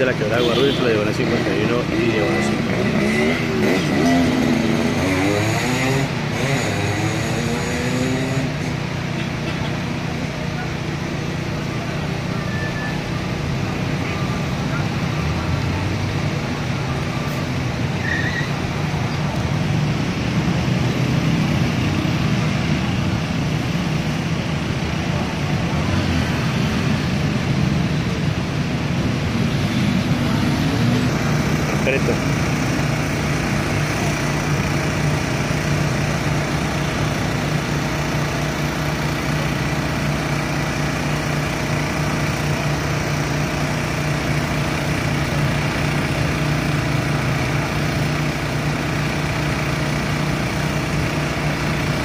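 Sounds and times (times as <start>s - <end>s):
traffic passing: 0.0s - 52.0s
engine revving: 0.1s - 9.1s, 25.0s - 52.0s.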